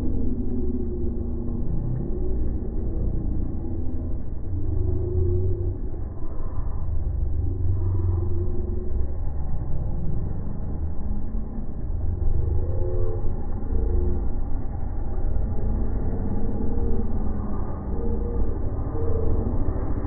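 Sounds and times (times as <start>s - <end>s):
distant dirt bike engines revving: 0.0s - 20.0s
heavy low rumble: 0.0s - 20.0s.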